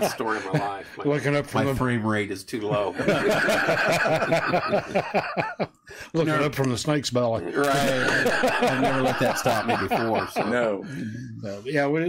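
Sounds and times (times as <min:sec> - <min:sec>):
men laughing: 0:00.0 - 0:01.7, 0:02.6 - 0:06.5, 0:07.4 - 0:11.4.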